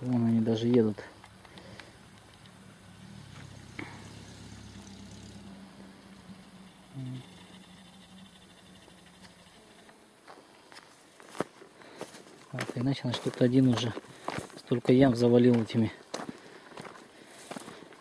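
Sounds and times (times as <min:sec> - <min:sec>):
faint truck engine hum: 0:00.2 - 0:10.7.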